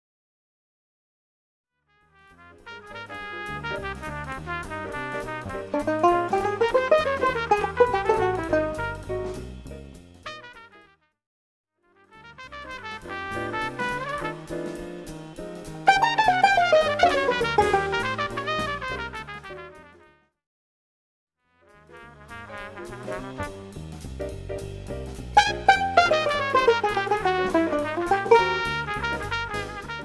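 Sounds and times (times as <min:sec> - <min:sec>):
banjo plucking fast notes: 0:05.7 - 0:09.3, 0:15.9 - 0:18.9, 0:25.4 - 0:29.8.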